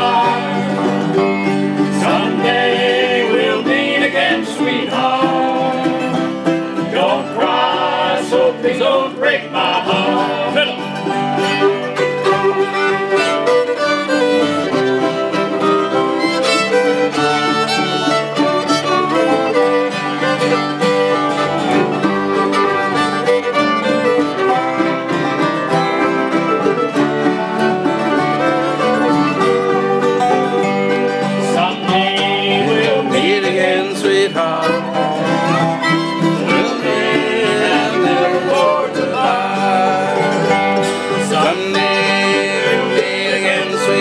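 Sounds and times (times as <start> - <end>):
bluegrass band playing: 0.0 - 44.0
fiddle: 0.0 - 44.0.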